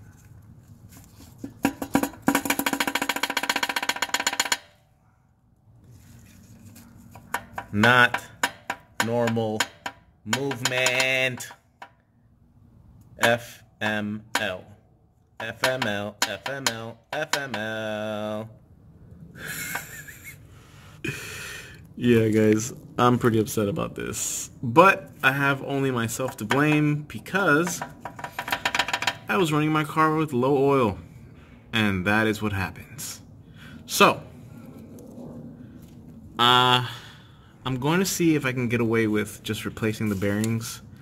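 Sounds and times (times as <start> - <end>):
connecting rod clacking metal on metal: 1.5 - 4.8, 7.2 - 12.0, 27.6 - 29.3
man's wheezy exhale: 20.4 - 21.8.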